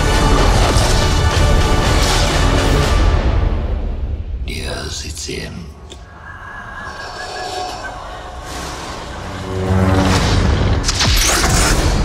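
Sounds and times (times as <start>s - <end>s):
rushing noise: 6.0s - 10.9s.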